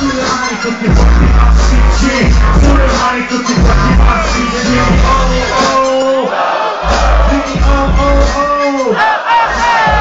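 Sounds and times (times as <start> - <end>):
hip-hop beat with heavy bass: 0.0 - 10.0
crowd shouting and chanting: 3.9 - 10.0.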